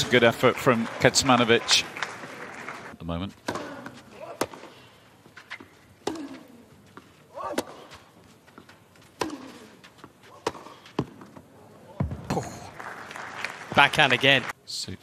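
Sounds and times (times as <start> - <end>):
racquets striking tennis ball: 3.3 - 12.4.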